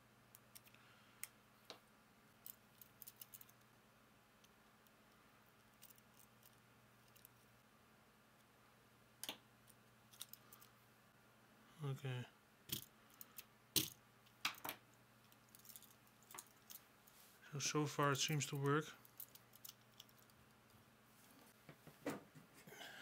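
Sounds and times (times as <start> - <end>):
plastic parts clicking and tapping: 12.7 - 16.8.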